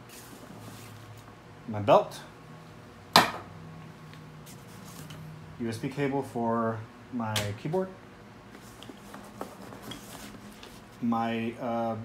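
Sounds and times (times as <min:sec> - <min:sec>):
faint handling rustles: 0:08.5 - 0:11.1.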